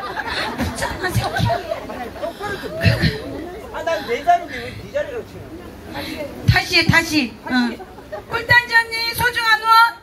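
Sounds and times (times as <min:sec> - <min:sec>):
voices chattering: 0:00.0 - 0:10.0.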